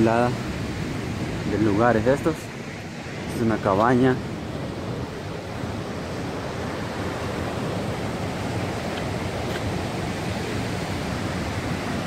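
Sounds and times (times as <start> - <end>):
surf on a stony beach: 0.0 - 12.0.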